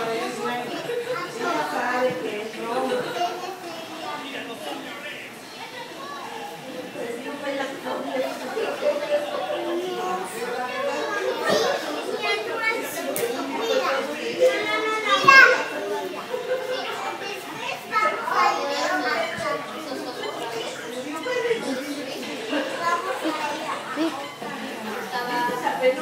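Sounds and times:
children talking: 0.0 - 26.0.

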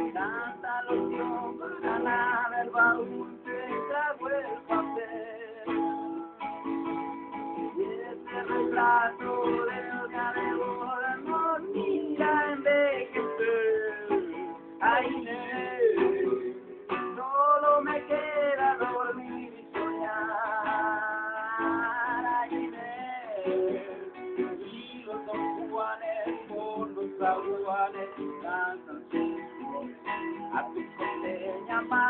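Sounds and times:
man singing: 0.0 - 6.5, 7.3 - 32.0
classical guitar strummed: 0.0 - 32.0.

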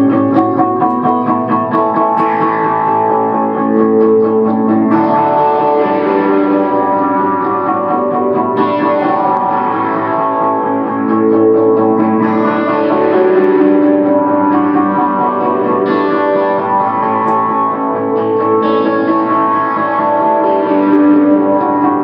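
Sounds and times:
looped electric guitar with delay: 0.0 - 22.0.

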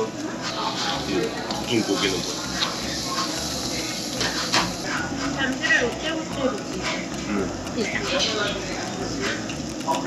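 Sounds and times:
tongs and tableware clinking: 0.0 - 10.0
voices chattering: 0.0 - 10.0.

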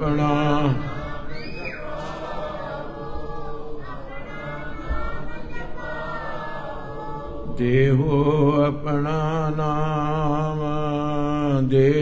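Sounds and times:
congregation singing a chant: 0.0 - 12.0.

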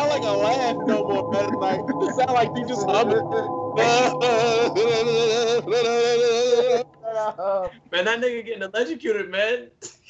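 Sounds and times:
man laughing high-pitched: 0.0 - 7.4.

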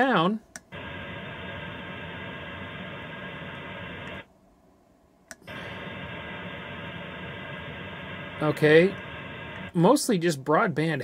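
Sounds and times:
radio static hiss: 0.0 - 4.3, 5.4 - 10.0
click: 0.5 - 0.7, 4.0 - 4.2, 5.3 - 5.5.

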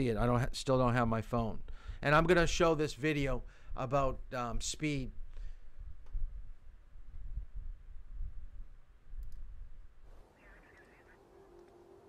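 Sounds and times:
low room noise rumble: 0.0 - 12.0
computer mouse clicks: 9.2 - 9.4
faint video audio: 10.1 - 12.0.

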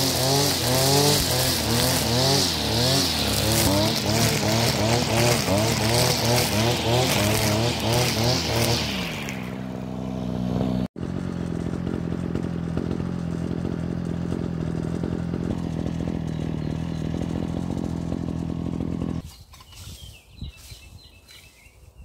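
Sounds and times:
brush cutter engine revving: 0.0 - 21.5.

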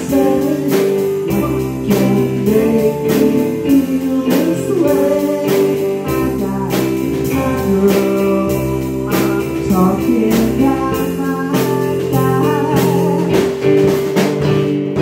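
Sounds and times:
person singing: 0.0 - 13.9
drum kit beat: 0.0 - 15.0
electric guitar: 0.0 - 15.0
keyboard: 0.0 - 15.0.

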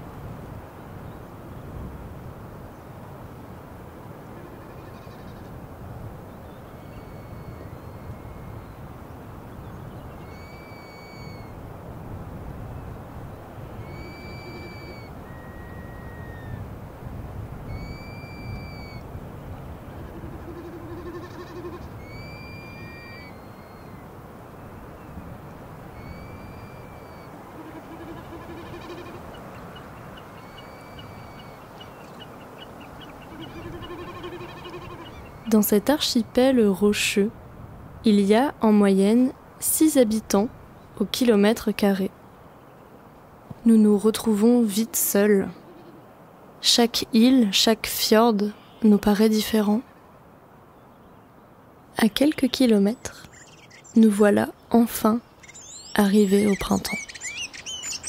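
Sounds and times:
lower shorter bird calls: 6.4 - 8.9, 9.6 - 11.6, 13.7 - 16.6, 17.6 - 19.1, 19.8 - 24.1, 25.9 - 36.4, 55.2 - 58.0
bird whistled call: 6.8 - 8.8, 10.2 - 11.5, 13.8 - 16.6, 17.7 - 19.0, 20.5 - 24.0, 26.0 - 29.2, 30.4 - 31.6, 55.4 - 58.0.

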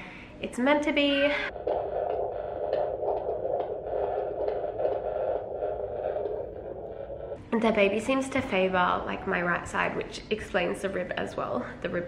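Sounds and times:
doppler heartbeat whooshing: 1.5 - 7.4
static: 1.5 - 7.4.

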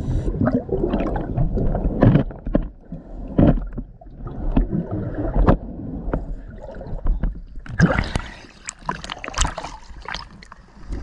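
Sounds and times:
low underwater rumble: 0.0 - 8.4
underwater knocks and clicks: 0.4 - 10.6
water splashing: 3.4 - 11.0.

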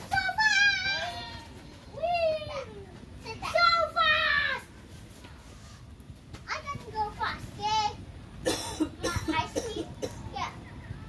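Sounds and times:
children shouting: 0.0 - 4.7.

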